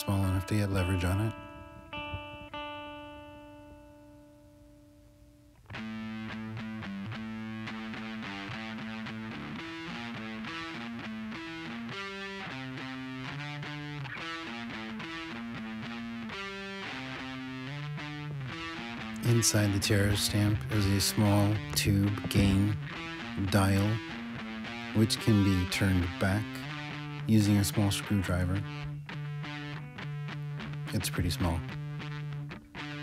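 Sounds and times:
distorted electric guitar: 0:00.0 - 0:33.0.

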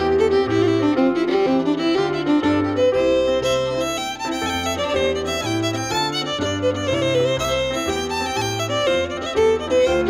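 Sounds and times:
fiddle playing fast melody: 0:00.0 - 0:10.0
piano bass notes and chords: 0:00.0 - 0:10.0.

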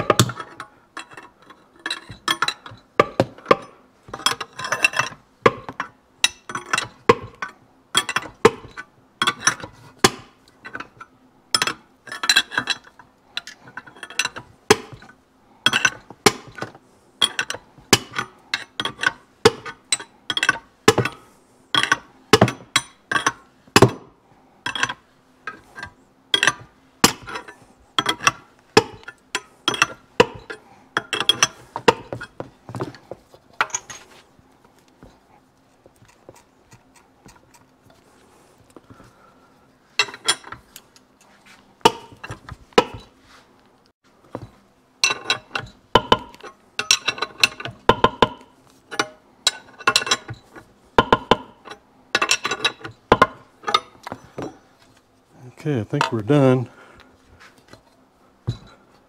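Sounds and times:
wrench clinking on metal nut: 0:17.2 - 0:21.2, 0:45.0 - 0:48.3, 0:48.9 - 0:50.4, 0:51.0 - 0:54.4.

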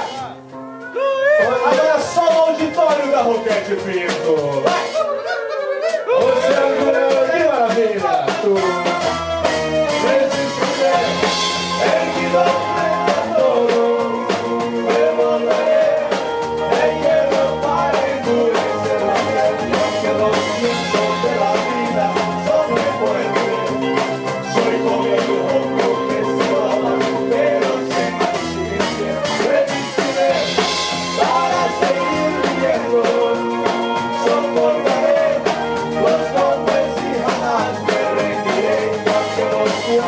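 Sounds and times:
keyboard: 0:00.0 - 0:40.0
drum kit beat: 0:01.3 - 0:40.0
electric guitar: 0:08.3 - 0:40.0
person singing: 0:10.0 - 0:40.0.

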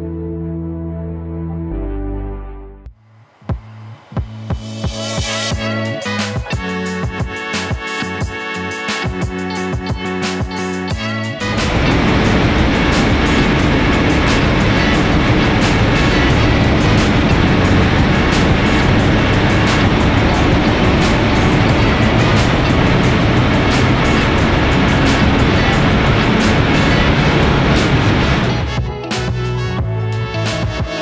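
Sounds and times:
background music: 0:00.0 - 0:31.0
tyres driving dynamometer rollers: 0:11.4 - 0:28.8
diesel engine running under load: 0:11.5 - 0:28.9.

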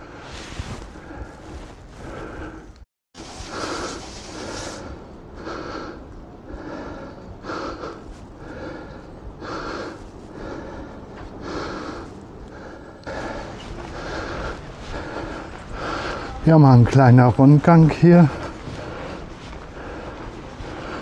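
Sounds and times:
man breathing hard: 0:00.6 - 0:16.4, 0:18.0 - 0:21.0.

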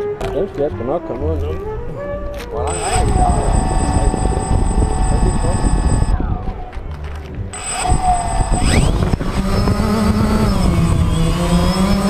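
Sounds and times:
drone motors whining: 0:02.6 - 0:06.6, 0:07.5 - 0:12.0.

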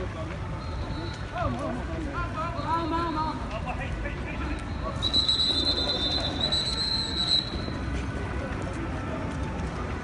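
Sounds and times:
crowd noise: 0:00.0 - 0:10.0
street noise: 0:00.0 - 0:10.0.

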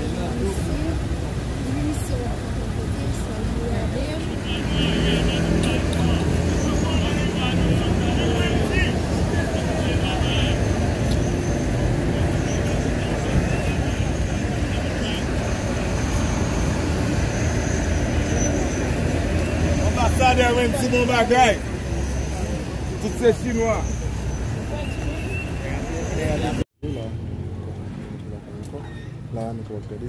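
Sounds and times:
people's voices: 0:00.0 - 0:17.3, 0:18.0 - 0:30.0
vehicle engine droning: 0:02.6 - 0:28.6.

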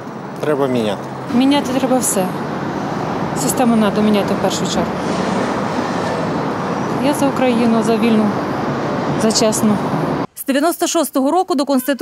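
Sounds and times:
city road traffic: 0:00.0 - 0:12.0.

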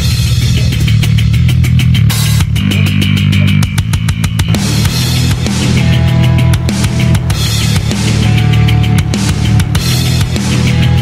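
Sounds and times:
rock music: 0:00.0 - 0:11.0.

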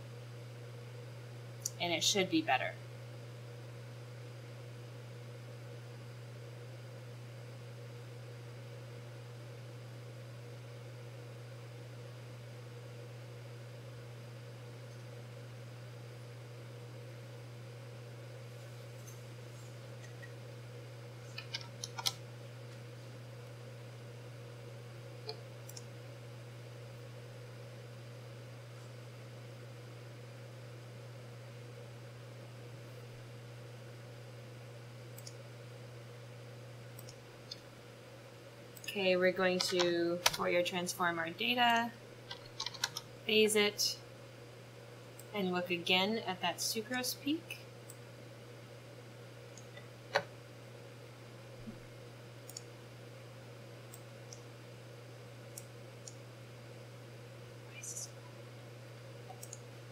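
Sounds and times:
low background hum: 0:00.0 - 0:59.9
computer keyboard clicks: 0:21.4 - 0:22.2, 0:42.3 - 0:43.0.

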